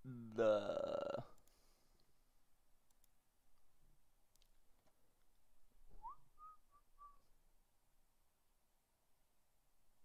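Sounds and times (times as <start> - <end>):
faint whistled phrase: 5.9 - 7.3.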